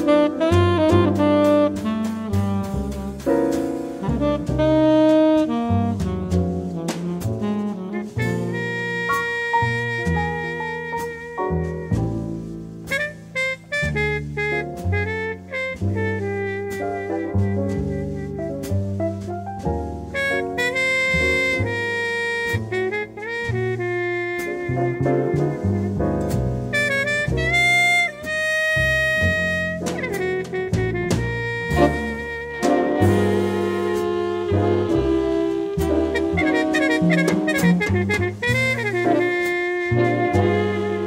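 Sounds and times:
double bass: 0.0s - 41.0s
drums: 0.0s - 41.0s
horn melody: 0.0s - 41.0s
piano: 0.0s - 41.0s
slow jazz ballad: 0.0s - 41.0s.

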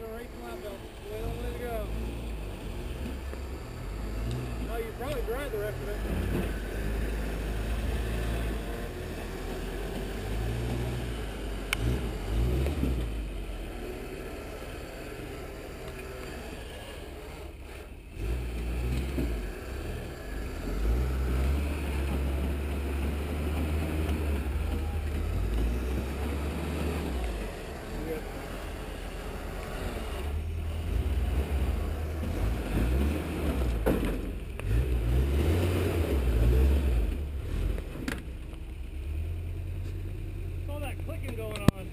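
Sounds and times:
truck engine revving: 0.0s - 41.9s.

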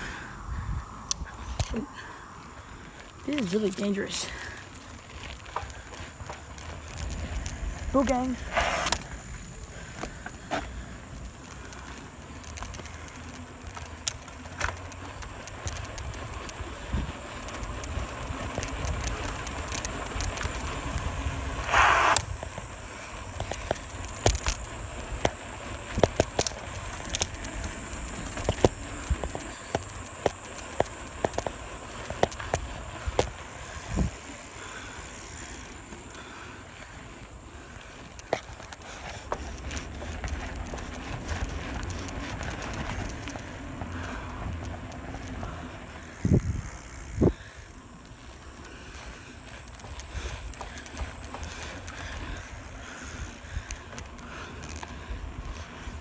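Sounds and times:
wind rumble on microphone: 0.0s - 3.2s, 4.9s - 10.4s, 15.1s - 34.4s, 39.4s - 48.0s
bicycle rattling over road: 0.0s - 56.0s.

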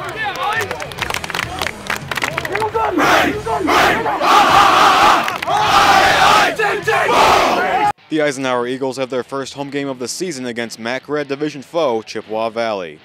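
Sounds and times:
team shouting in unison: 2.7s - 7.9s.

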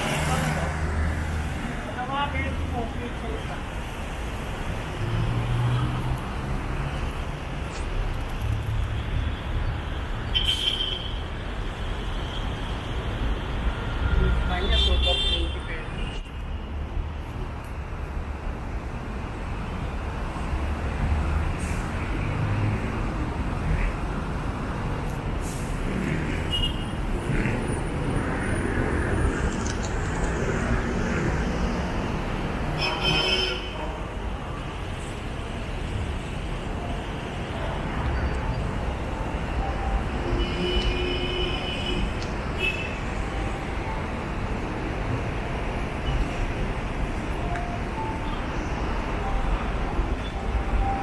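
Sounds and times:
vehicle engines passing: 0.0s - 10.2s, 16.8s - 40.9s
car horn: 32.8s - 34.0s.

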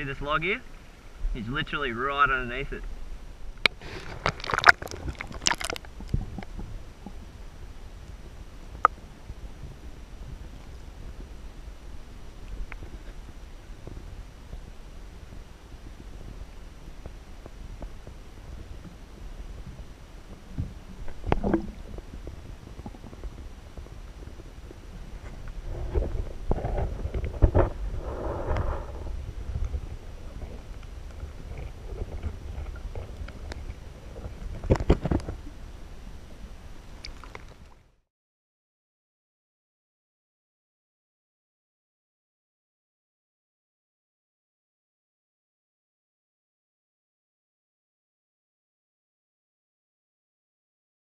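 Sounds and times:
muffled underwater rumble and gurgle: 0.0s - 38.0s.

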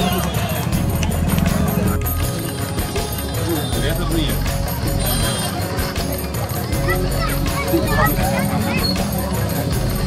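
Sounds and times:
music: 0.0s - 10.0s
voices: 0.0s - 10.0s.

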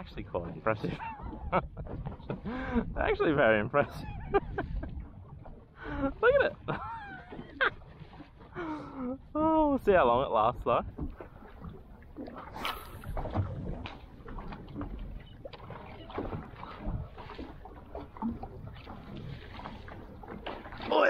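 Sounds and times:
water slapping against kayak hull: 0.0s - 21.0s.

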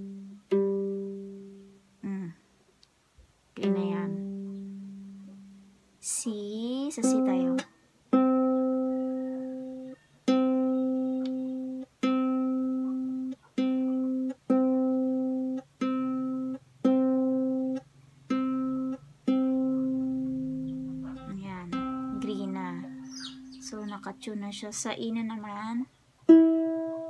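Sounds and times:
ukulele string plucked: 0.0s - 1.6s, 3.6s - 5.6s, 7.0s - 24.6s, 26.2s - 27.0s.

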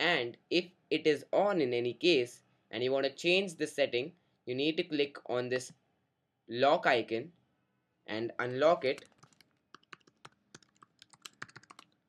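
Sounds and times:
computer keyboard tapping: 8.9s - 12.0s.

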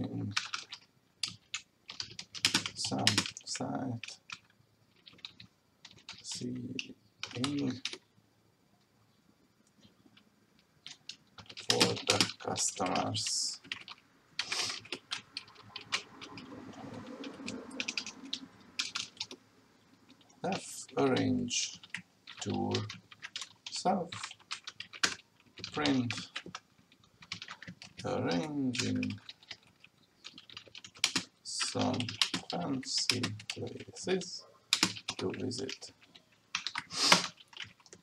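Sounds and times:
typing on a computer keyboard: 0.3s - 8.0s, 9.8s - 19.4s, 20.1s - 38.0s.

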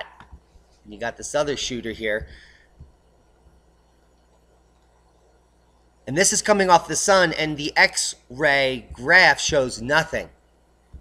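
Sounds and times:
faint low hum and hiss: 0.0s - 11.0s.

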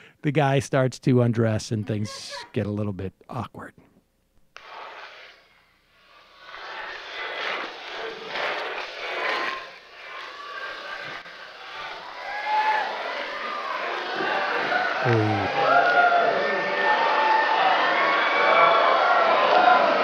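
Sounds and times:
crowd whoops: 10.2s - 20.0s
crowd talking and calling out: 12.9s - 17.9s.

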